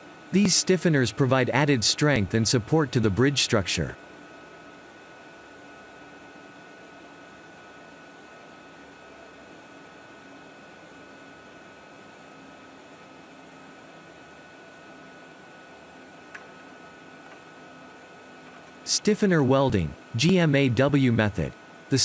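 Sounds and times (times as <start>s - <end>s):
faint hum: 0.0s - 22.0s.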